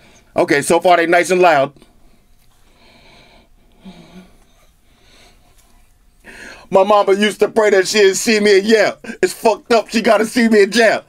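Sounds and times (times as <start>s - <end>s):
man breathing faintly: 1.8s - 6.7s.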